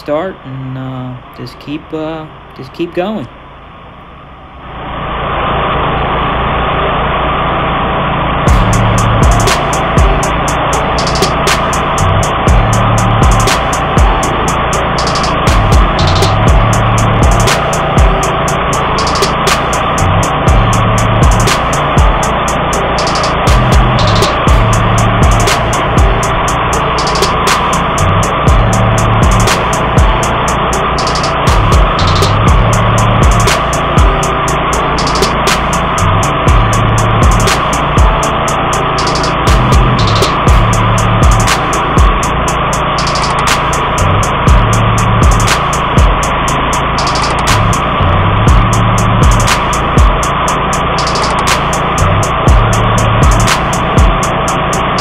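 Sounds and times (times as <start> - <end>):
mower engine running: 0.0 - 55.0
background music with steady beat: 8.5 - 55.0.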